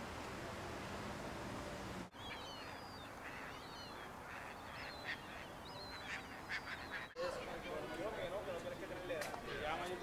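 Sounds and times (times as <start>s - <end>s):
low background hiss: 0.0s - 9.5s
birds chirping: 2.1s - 8.8s.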